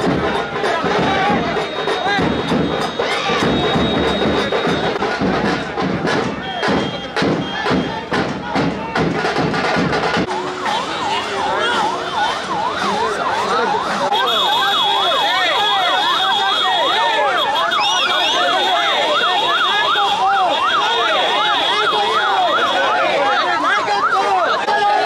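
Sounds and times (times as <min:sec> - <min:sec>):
electronic yelp siren: 0:00.0 - 0:05.0, 0:10.3 - 0:25.0
crowd noise: 0:00.0 - 0:25.0
siren wails: 0:10.3 - 0:25.0.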